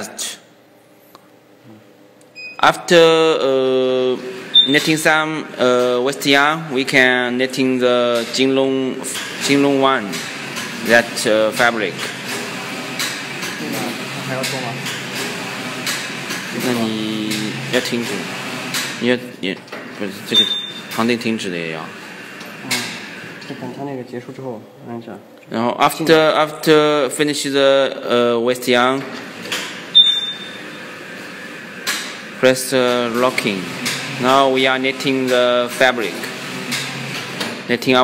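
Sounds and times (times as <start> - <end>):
short high electronic beep: 4.5 - 4.8, 20.3 - 20.9, 30.0 - 30.8.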